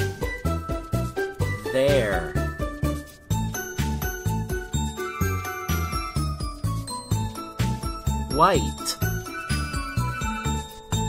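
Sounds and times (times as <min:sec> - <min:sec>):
upbeat music with jingling tones: 0:00.0 - 0:11.0
person saying a word: 0:08.3 - 0:09.0.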